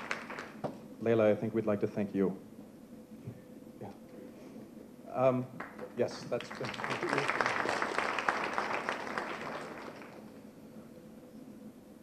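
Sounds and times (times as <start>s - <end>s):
audience applauding: 0.0s - 0.6s, 5.6s - 10.5s.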